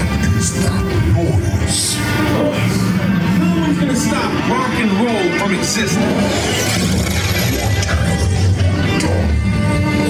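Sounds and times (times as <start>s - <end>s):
loud music: 0.0s - 10.0s.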